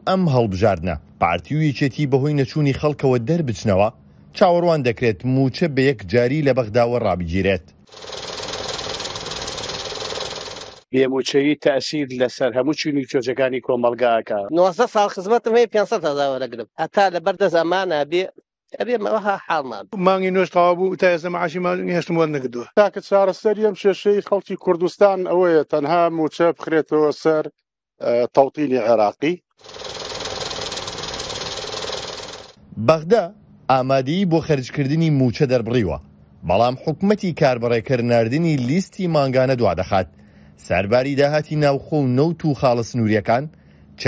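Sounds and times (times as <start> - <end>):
banknote counting machine whirring: 7.8 - 10.9, 29.6 - 32.6.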